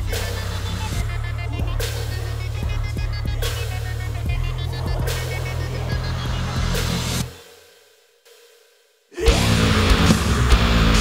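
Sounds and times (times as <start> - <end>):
crash cymbals: 0.0 - 11.0
metalcore band playing: 9.2 - 11.0.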